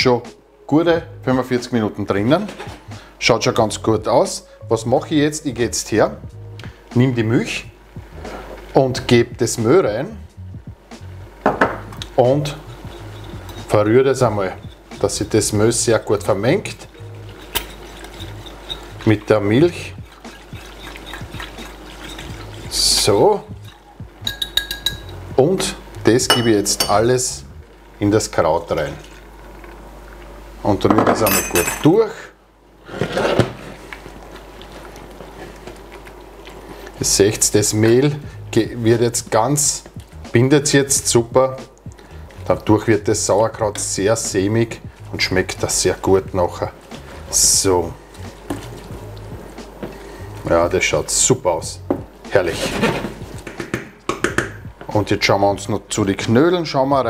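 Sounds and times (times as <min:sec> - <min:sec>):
quiet background music: 0:00.0 - 0:32.1, 0:34.1 - 0:57.0
wooden spoon stirring in saucepan: 0:08.0 - 0:09.9, 0:11.3 - 0:30.6, 0:32.8 - 0:55.4
glass dish knocking glass bowl: 0:11.5 - 0:11.9, 0:23.6 - 0:25.1, 0:26.3 - 0:27.0, 0:30.9 - 0:31.8
sharp glass clinks: 0:31.3 - 0:31.9.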